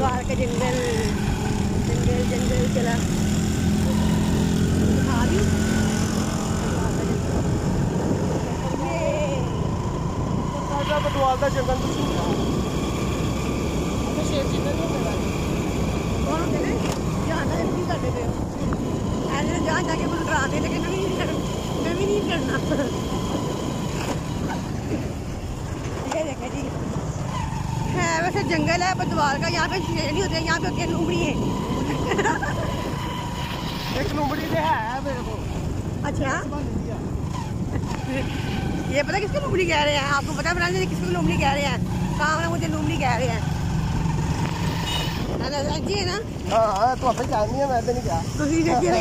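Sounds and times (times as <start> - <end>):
motorcycle engine: 0.0 - 49.0
wind buffeting microphone: 0.0 - 49.0.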